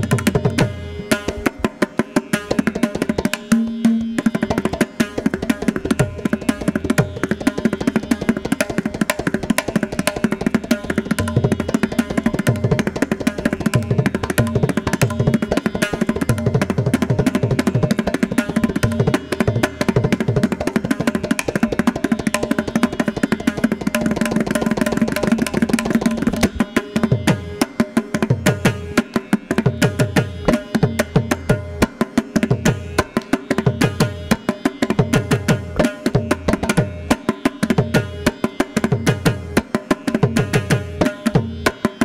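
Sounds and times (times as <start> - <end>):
hand drum fast strokes: 0.0 - 42.0.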